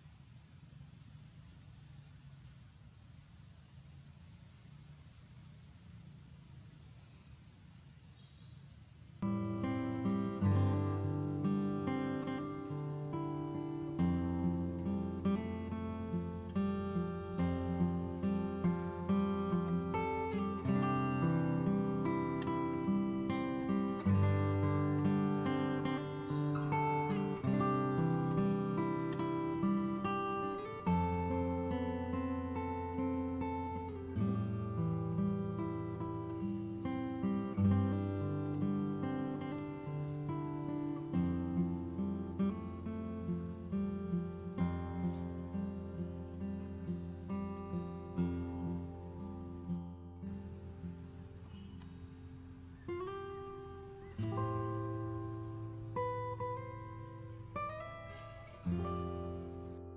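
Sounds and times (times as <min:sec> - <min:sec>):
strummed acoustic guitar chords: 0:09.2 - 0:59.9.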